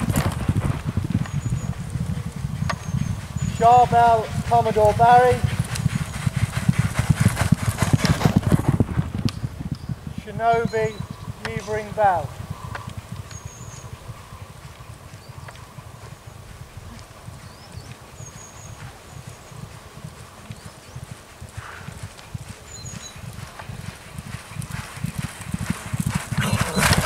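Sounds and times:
horse hoofbeats cantering: 0:00.0 - 0:27.0.

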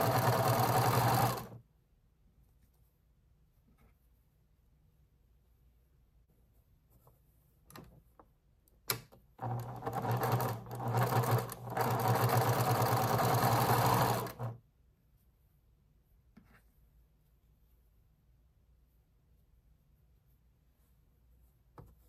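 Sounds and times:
sewing machine stitching: 0:00.0 - 0:01.6, 0:09.4 - 0:14.6.

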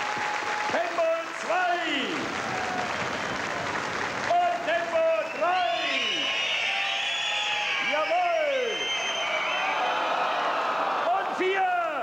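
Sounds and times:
audience applauding: 0:00.0 - 0:11.2.

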